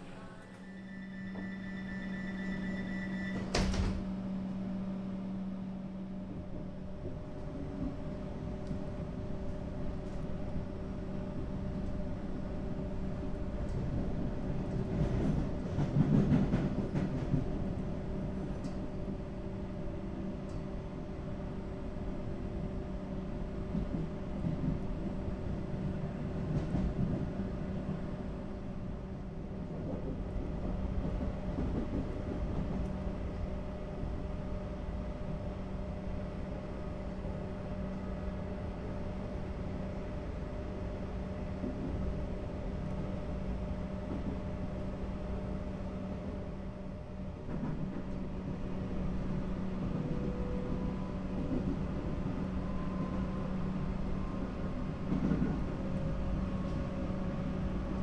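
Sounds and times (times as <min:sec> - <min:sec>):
train electrical hum: 0:00.0 - 0:58.0
train sliding doors banging shut: 0:02.6 - 0:04.2.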